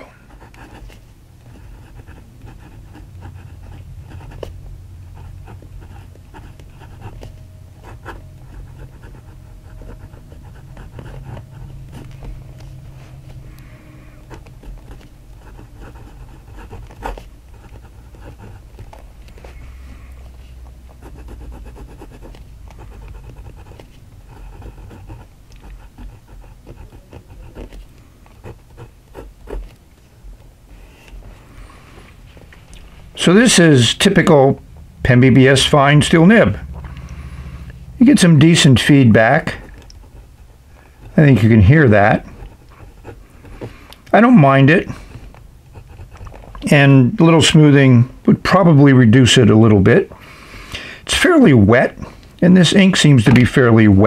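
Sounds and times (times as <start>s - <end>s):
pen nib scratching paper: 0.0s - 29.8s, 38.0s - 47.6s
steady low hum: 0.0s - 54.0s.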